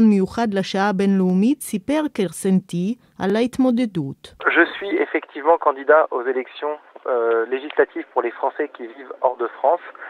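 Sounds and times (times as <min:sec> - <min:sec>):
voice talking on radio: 0:04.4 - 0:10.0.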